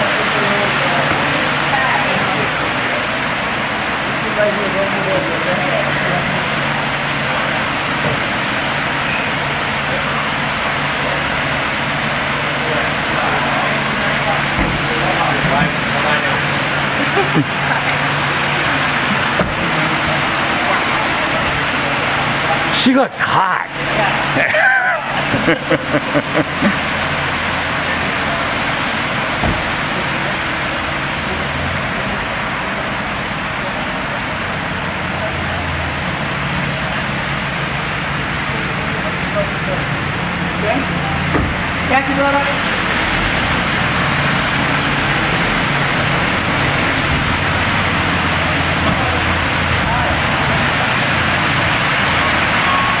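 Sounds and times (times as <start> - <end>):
car engine idling: 0.0 - 53.0
fountain water rushing: 0.0 - 53.0
thump: 14.6 - 14.9, 19.4 - 19.6, 29.4 - 29.8, 41.3 - 41.6.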